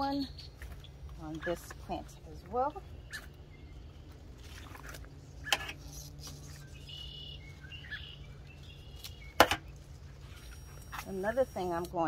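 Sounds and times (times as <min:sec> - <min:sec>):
low background hum: 0:00.0 - 0:12.0
bird chirps: 0:02.6 - 0:04.1, 0:05.8 - 0:10.6
garden shears snipping: 0:04.6 - 0:06.9, 0:08.9 - 0:09.8, 0:11.0 - 0:12.0.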